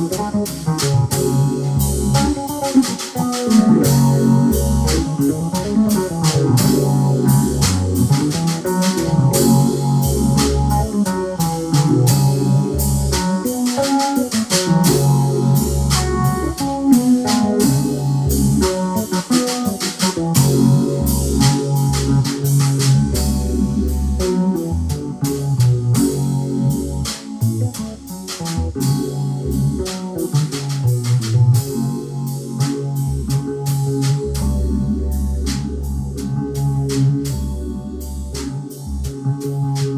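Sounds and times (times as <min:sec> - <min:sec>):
drum kit and cymbal hits: 0:00.0 - 0:39.9
electronic keyboard chords: 0:00.0 - 0:39.9.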